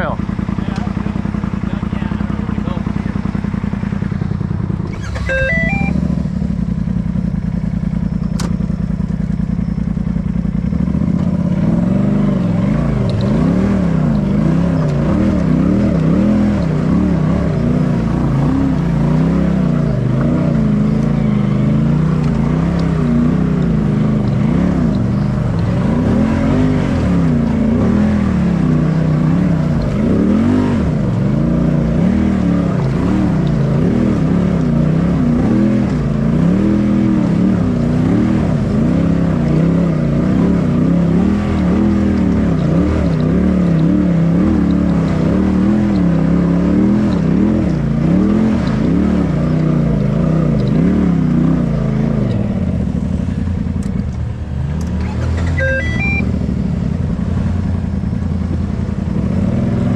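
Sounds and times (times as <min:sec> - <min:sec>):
engine idling and revving: 0:00.0 - 0:59.9
rising beeps: 0:04.8 - 0:06.3, 0:55.1 - 0:56.5.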